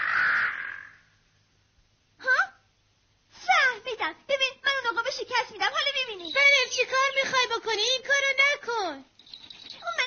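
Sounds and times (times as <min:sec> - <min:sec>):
cartoon eagle screech: 0:00.0 - 0:01.0.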